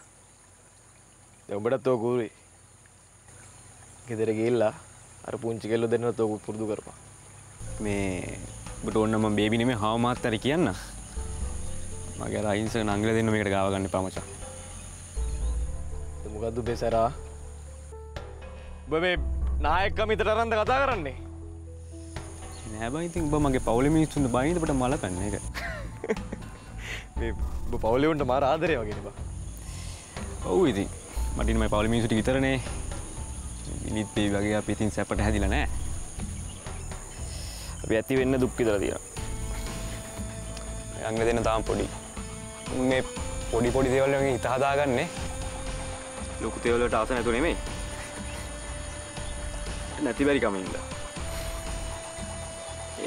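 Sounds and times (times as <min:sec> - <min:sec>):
insects chirring: 0:00.0 - 0:53.0
soft background music: 0:04.0 - 0:53.0.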